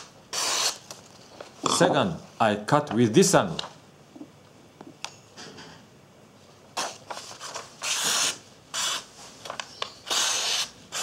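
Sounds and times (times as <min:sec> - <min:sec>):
knife slicing paper: 0:00.0 - 0:00.8, 0:06.8 - 0:09.1, 0:10.0 - 0:11.0
paper rustling: 0:06.8 - 0:08.2.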